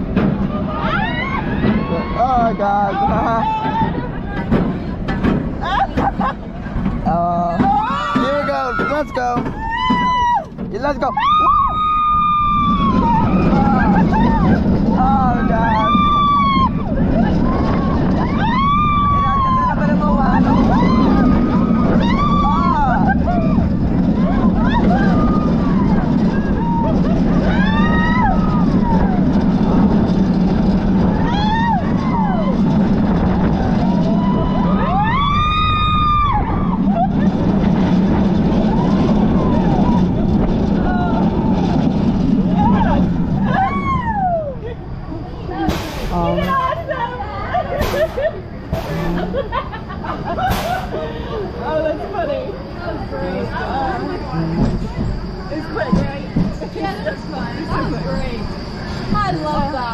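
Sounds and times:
roller coaster track noise: 0.0s - 59.9s
rushing wind: 0.0s - 59.9s
riders screaming: 0.5s - 4.1s, 7.6s - 44.8s.

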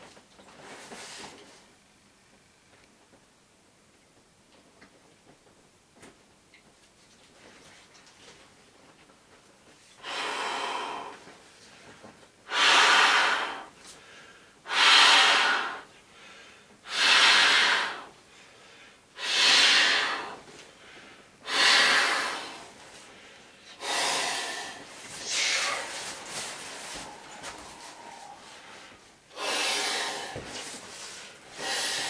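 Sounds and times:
person blowing into inflatable valve: 12.5s - 13.7s, 14.7s - 15.8s, 16.9s - 18.1s, 19.2s - 20.4s, 21.4s - 22.7s, 23.8s - 26.1s, 29.3s - 30.6s, 31.6s - 32.0s.

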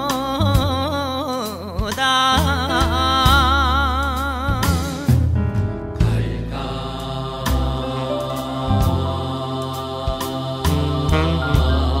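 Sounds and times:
deep bass: 0.0s - 12.0s
band accompaniment: 2.0s - 12.0s.

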